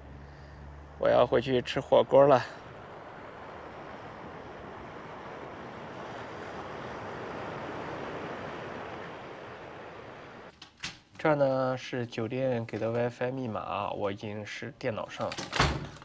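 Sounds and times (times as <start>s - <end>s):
waves breaking on sandy beach: 0.6s - 10.5s.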